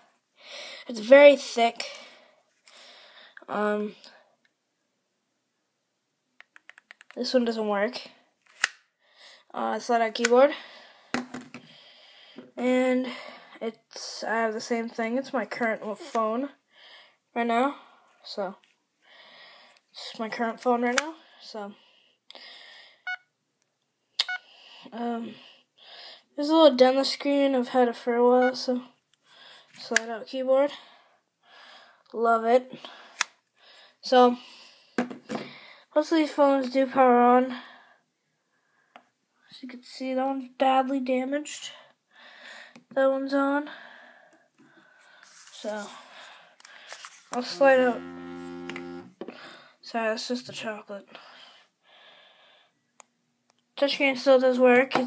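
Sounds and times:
faint breathing: 0.4 - 0.9, 1.8 - 4.4, 10.5 - 13.6, 16.7 - 18.2, 19.0 - 19.9, 21.2 - 23.1, 29.2 - 29.8, 30.7 - 32.1, 32.7 - 36.0, 41.8 - 42.8, 43.7 - 47.3, 49.3 - 49.8, 51.1 - 52.9.

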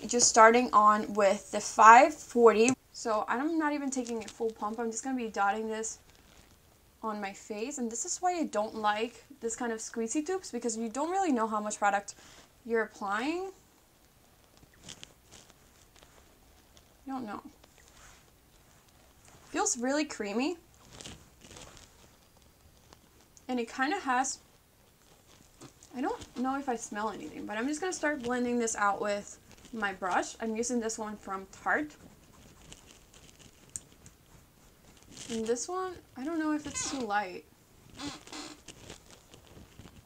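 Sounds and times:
soft brushing on skin: 13.6 - 40.0.

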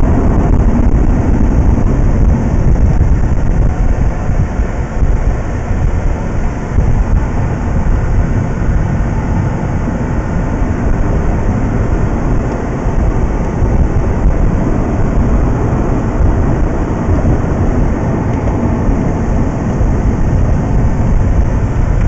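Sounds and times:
in-cabin driving rumble: 0.0 - 22.0.

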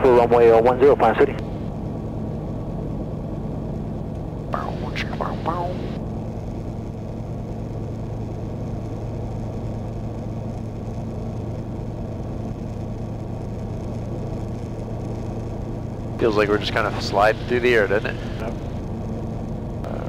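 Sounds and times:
light aircraft engine droning: 0.0 - 20.0.

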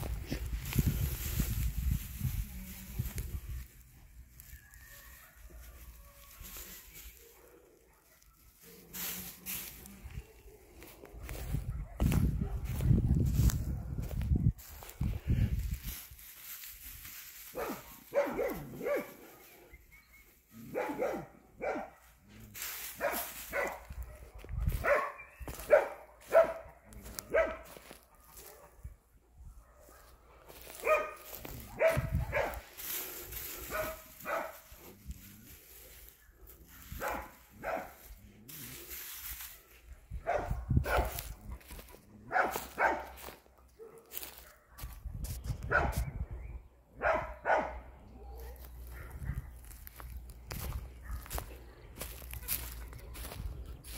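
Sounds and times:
dog barking: 5.0 - 6.2, 7.2 - 8.9, 10.2 - 12.8, 17.5 - 19.6, 20.6 - 22.2, 23.0 - 28.9, 29.6 - 32.7, 33.7 - 34.7, 36.9 - 38.0, 40.2 - 45.0, 45.7 - 46.0, 47.0 - 49.6, 51.0 - 51.4.

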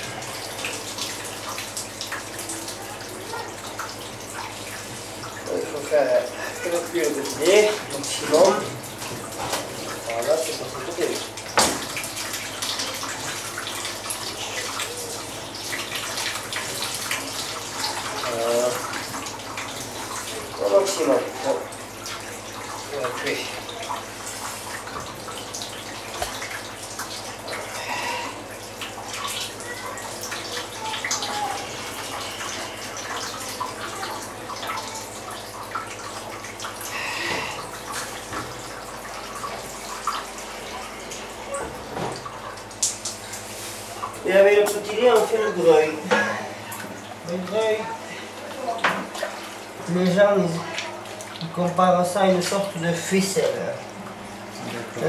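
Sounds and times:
whey trickling and splashing: 0.0 - 55.0.

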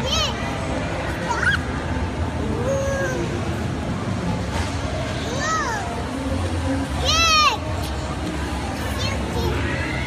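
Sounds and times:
background crowd noise: 0.0 - 10.0.

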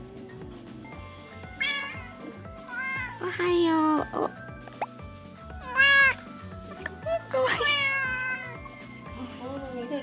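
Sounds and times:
cat meowing: 1.6 - 3.2, 5.6 - 6.2, 7.6 - 8.6.

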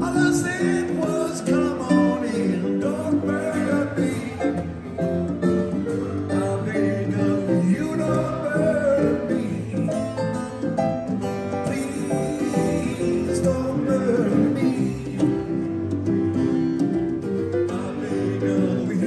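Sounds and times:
man singing: 0.0 - 16.0, 17.5 - 19.0
band instruments: 0.0 - 19.0
strummed acoustic guitar: 0.0 - 19.0.

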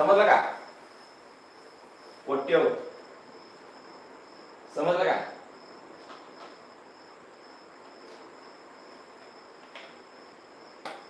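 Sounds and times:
crickets trilling: 0.0 - 11.0
faint room noise: 0.0 - 11.0.

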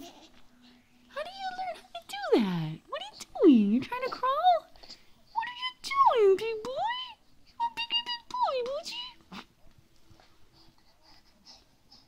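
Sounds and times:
soft breaths: 0.0 - 5.6, 7.1 - 7.8, 9.1 - 12.0.

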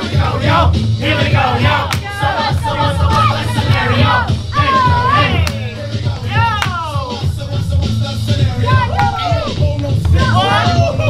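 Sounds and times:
crowd shouting: 0.0 - 7.2, 8.5 - 11.0
hip hop track with heavy bass: 0.0 - 11.0.

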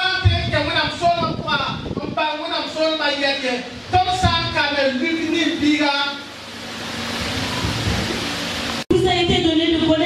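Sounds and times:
steady hiss: 0.0 - 8.9.

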